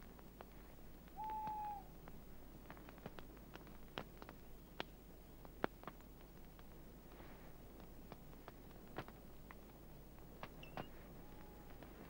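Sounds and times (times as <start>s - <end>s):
campfire crackling and popping: 0.0s - 10.6s
owl hooting: 1.2s - 1.9s, 11.2s - 11.8s.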